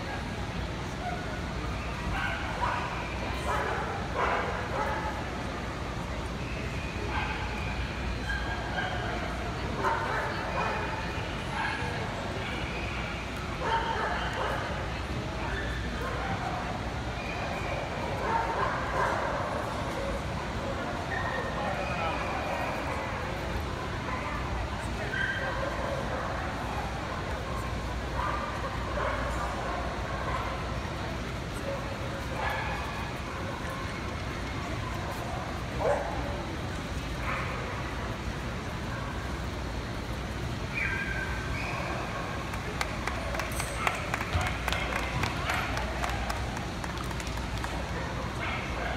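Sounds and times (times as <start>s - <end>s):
crowd chatter: 0.0s - 48.9s.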